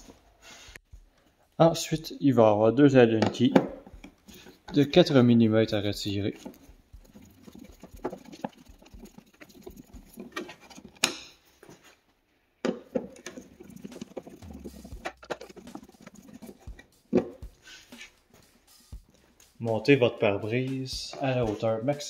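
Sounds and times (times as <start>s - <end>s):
screwdriver scraping on screws: 6.3s - 11.2s, 13.1s - 14.4s.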